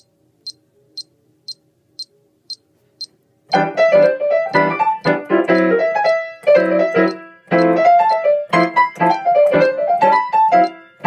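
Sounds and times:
metronome ticking: 0:00.0 - 0:11.0.

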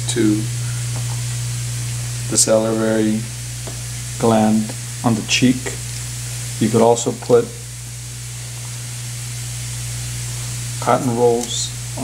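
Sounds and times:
even hiss: 0:00.0 - 0:12.0
low hum: 0:00.0 - 0:12.0.

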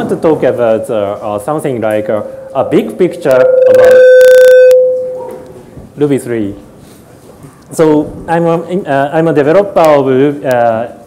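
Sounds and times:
microphone feedback howl: 0:01.9 - 0:05.6.

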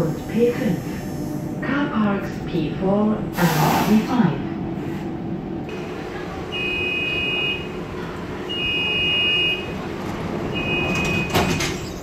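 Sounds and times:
train car low hum: 0:00.0 - 0:12.0
sliding doors shutting: 0:05.7 - 0:12.0
two-tone warning beep: 0:06.5 - 0:07.7, 0:08.5 - 0:09.7, 0:10.5 - 0:11.4.

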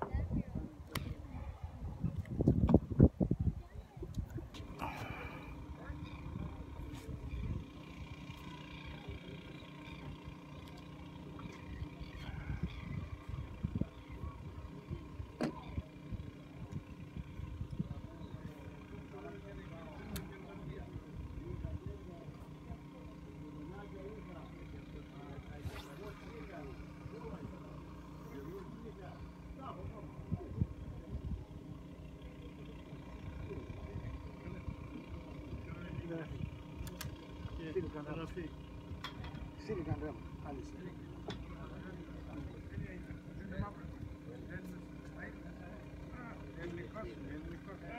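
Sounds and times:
faint background talking: 0:00.0 - 0:47.9.

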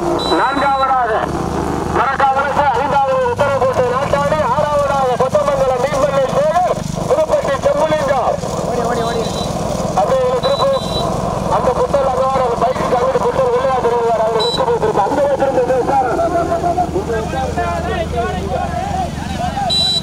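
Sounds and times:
vehicle engine running: 0:00.0 - 0:20.0
short high beeps: 0:00.2 - 0:01.0, 0:09.0 - 0:09.6, 0:10.4 - 0:11.1
men calling out: 0:10.4 - 0:20.0.

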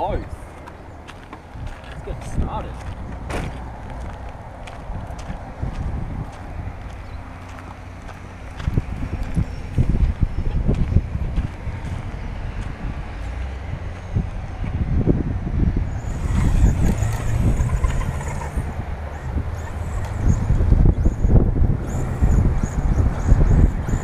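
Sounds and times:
wind buffeting microphone: 0:00.0 - 0:24.0
toy car jolting and rattling: 0:16.0 - 0:20.2.

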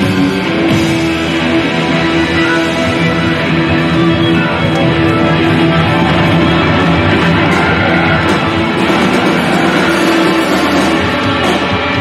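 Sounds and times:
drum kit with cymbals: 0:00.0 - 0:12.0
electric bass: 0:00.0 - 0:12.0
electric guitar: 0:00.0 - 0:12.0.

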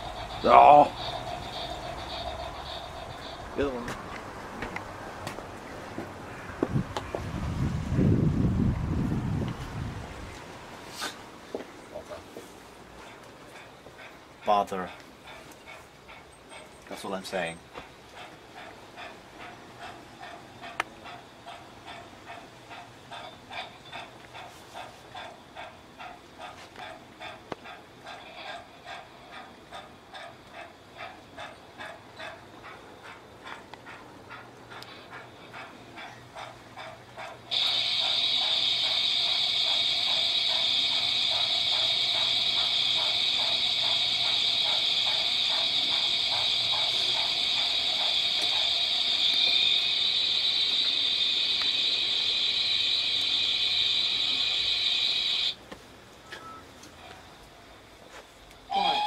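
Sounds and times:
hiss of escaping steam: 0:00.0 - 0:04.2, 0:10.8 - 0:11.4, 0:18.2 - 0:32.3, 0:34.7 - 0:55.6
model steam locomotive chuffing: 0:00.0 - 0:09.7, 0:11.0 - 0:59.0.

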